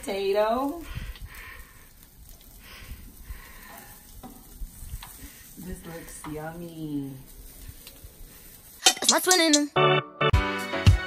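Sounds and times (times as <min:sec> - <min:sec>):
skewers sizzling on grill: 0:00.0 - 0:09.6.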